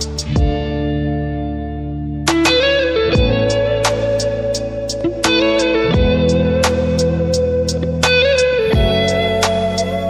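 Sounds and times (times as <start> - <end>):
bass line: 0.0 - 10.0.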